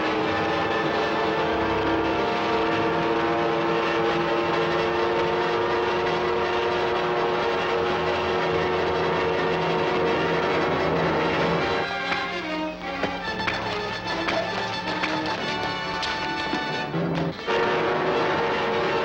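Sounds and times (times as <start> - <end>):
engine drone: 0.0 - 19.0.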